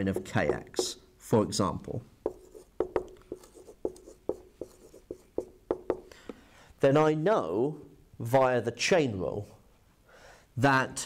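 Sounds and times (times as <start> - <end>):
marker squeaking on whiteboard: 2.3 - 6.1.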